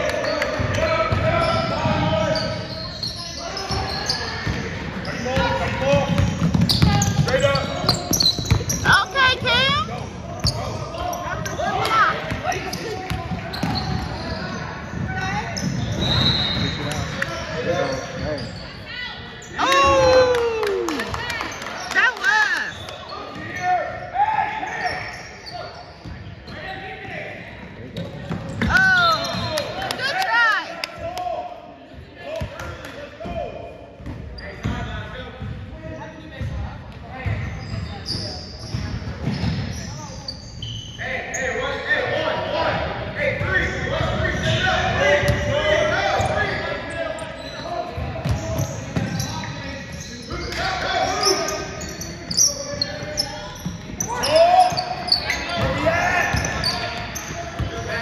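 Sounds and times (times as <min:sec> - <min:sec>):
voices of players and spectators: 0:00.0 - 0:58.0
basketball bouncing on wooden floor: 0:05.4 - 0:07.3, 0:08.0 - 0:09.6.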